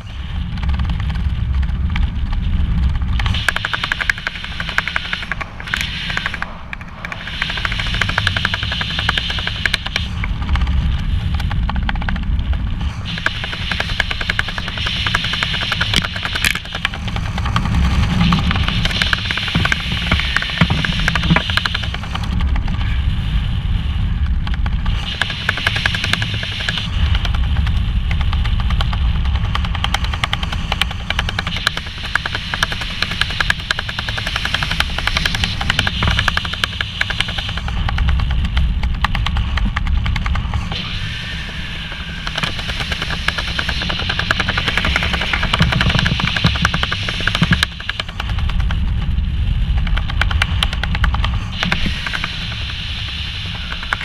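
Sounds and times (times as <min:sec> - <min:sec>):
parachute canopy ticks and flutters: 0:00.0 - 0:54.0
wind buffeting microphone: 0:00.0 - 0:54.0.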